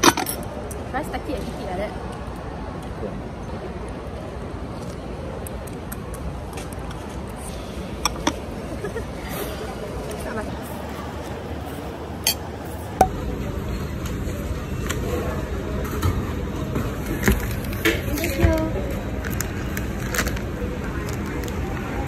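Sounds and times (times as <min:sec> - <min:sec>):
murmur of background voices: 0:00.0 - 0:22.0.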